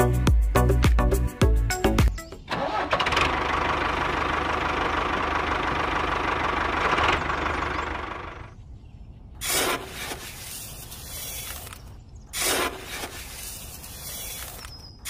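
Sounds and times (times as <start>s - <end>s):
small motor humming: 9.4s - 15.0s.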